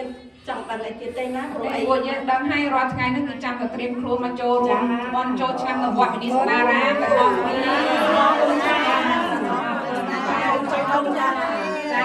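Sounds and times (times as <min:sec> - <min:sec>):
women chattering: 0:04.4 - 0:12.0.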